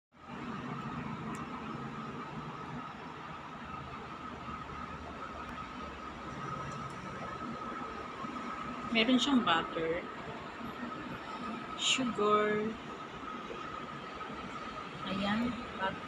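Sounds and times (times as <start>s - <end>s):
constant high whine: 0.1s - 16.0s
steady background hum: 0.2s - 16.0s.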